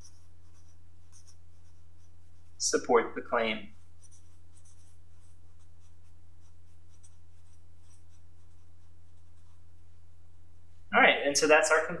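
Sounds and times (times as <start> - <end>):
marker scratching on paper: 0.0 - 2.6, 3.7 - 9.7
low electrical hum: 0.0 - 12.0.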